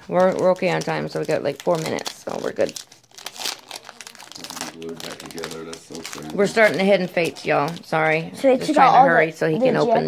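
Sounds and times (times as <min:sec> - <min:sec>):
foil wrapper crinkling: 0:00.0 - 0:08.2.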